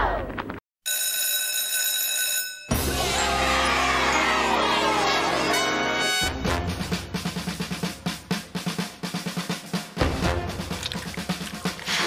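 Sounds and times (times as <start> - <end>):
electric bell ringing: 0.9 - 2.9
upbeat theme music: 2.7 - 12.0.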